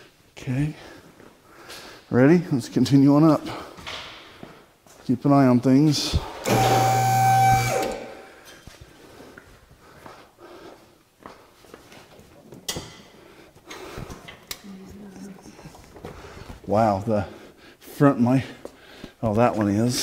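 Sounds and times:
hydraulic pump motor humming: 0:06.4 - 0:08.1.

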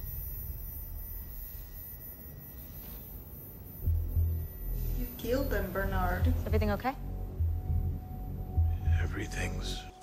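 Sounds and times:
low rumble from tv: 0:00.0 - 0:10.0.

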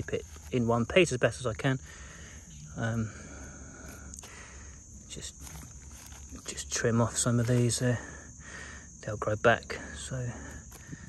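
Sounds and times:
fingers handling soil and roots: 0:00.0 - 0:01.5, 0:02.7 - 0:08.1, 0:10.1 - 0:11.0
high insect drone: 0:00.0 - 0:11.0.

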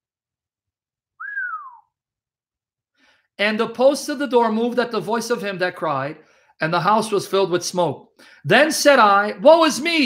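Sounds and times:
whistle-like gliding note: 0:01.2 - 0:01.8.

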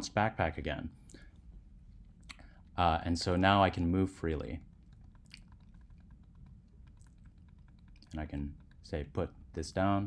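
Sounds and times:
keyboard keys tapping: 0:04.6 - 0:09.2.

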